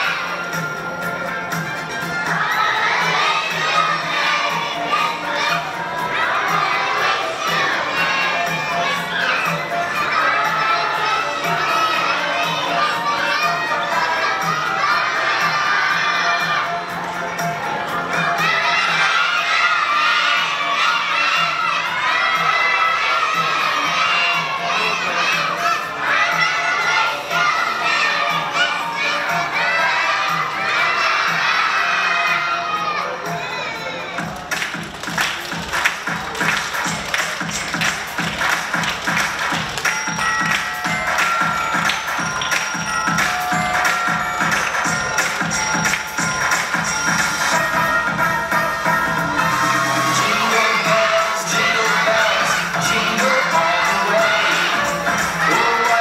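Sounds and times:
children singing loudly: 0.0 - 56.0.

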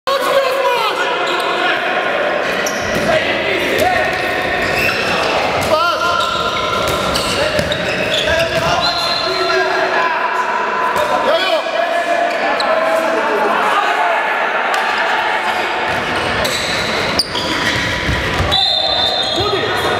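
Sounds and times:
shoe squeaks: 2.6 - 3.0, 4.6 - 5.4, 6.1 - 9.5, 16.4 - 19.9.

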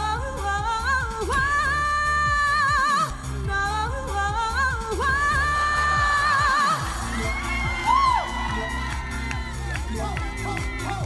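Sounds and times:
band backing track: 0.0 - 11.0
woman singing pop ballad: 0.0 - 11.0
audience whooping: 5.3 - 11.0.

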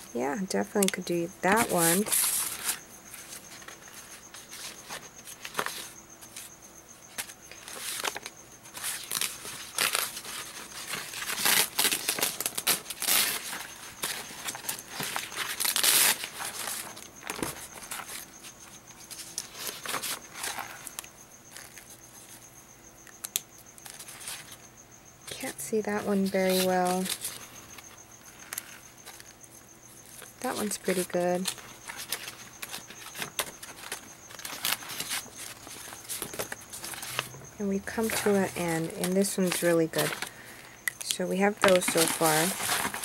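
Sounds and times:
paper sheets rustling: 1.5 - 6.5, 7.1 - 21.8, 30.1 - 40.5, 41.5 - 43.0.

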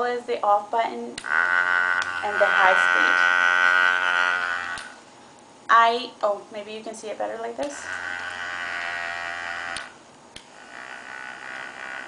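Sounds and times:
cleansing brush motor buzzing: 1.2 - 5.0, 7.6 - 12.0.

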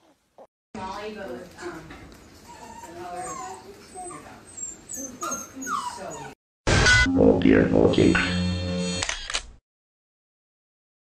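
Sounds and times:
puppies whimpering: 2.4 - 6.4.

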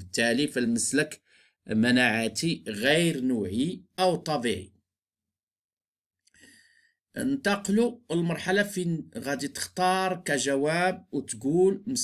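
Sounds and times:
faint intake of breath: 6.3 - 7.0.

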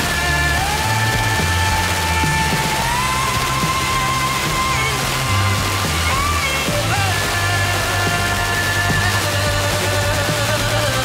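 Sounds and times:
radio music: 0.0 - 11.0
radio reception hiss: 0.0 - 11.0.

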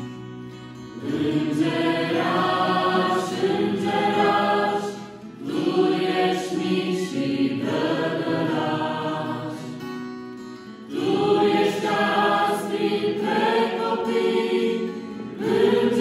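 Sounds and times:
acoustic guitar: 0.0 - 16.0
choir singing: 0.9 - 9.9, 10.8 - 16.0.

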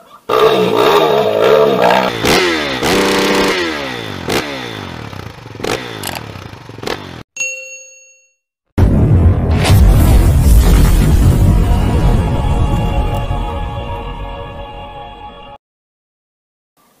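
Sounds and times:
motorcycle engine revving: 0.4 - 7.3
sharp clicks: 6.0 - 6.3
short bright bell ding: 7.4 - 8.4.

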